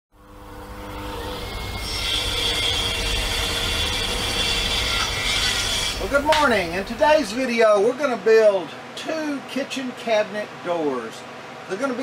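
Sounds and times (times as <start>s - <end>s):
mechanical whir: 0.2s - 7.0s
noisy hiss: 5.4s - 12.0s.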